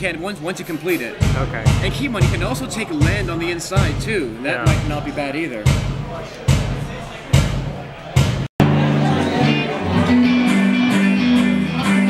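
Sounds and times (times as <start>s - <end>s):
drum beat: 1.2s - 8.5s
electric guitar chords: 8.6s - 12.0s
rock band playing: 8.6s - 12.0s.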